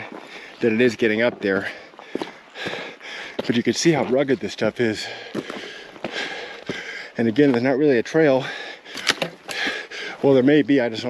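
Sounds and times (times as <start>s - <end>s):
footsteps on gravel: 0.0s - 10.6s.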